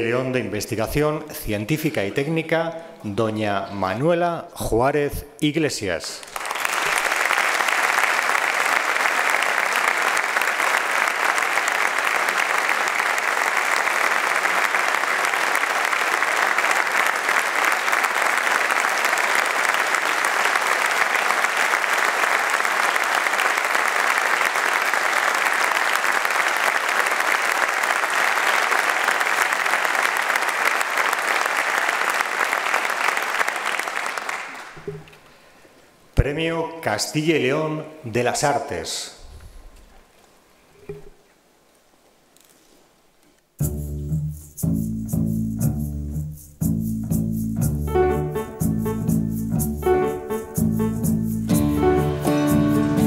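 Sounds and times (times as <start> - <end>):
audience applauding: 6.2 - 35.2.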